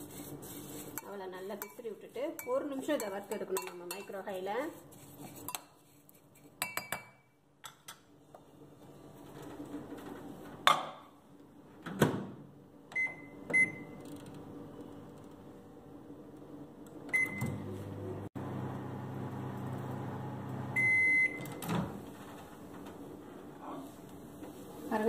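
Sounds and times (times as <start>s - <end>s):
microwave humming: 12.5s - 24.5s.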